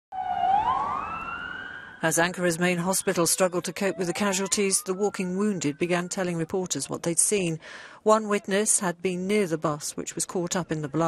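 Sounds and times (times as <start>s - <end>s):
emergency siren wailing: 0.1s - 6.8s.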